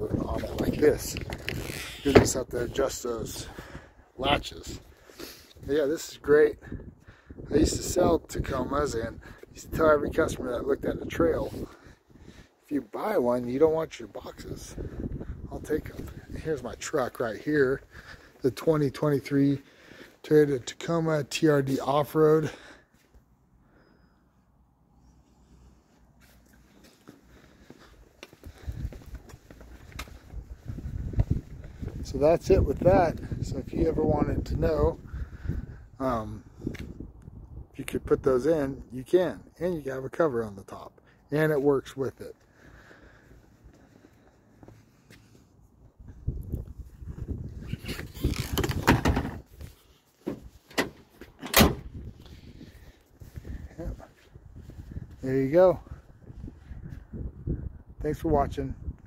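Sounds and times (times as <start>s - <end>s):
wind rumbling on microphone: 0.0s - 4.9s, 6.6s - 12.5s, 14.2s - 16.8s, 28.4s - 38.9s, 45.8s - 49.8s, 51.7s - 59.0s
tailgate shutting: 2.0s - 2.4s, 48.3s - 49.4s, 50.2s - 52.0s
footsteps on concrete: 26.2s - 32.0s, 43.4s - 45.5s
tailgate rattling and knocking: 48.6s - 49.4s.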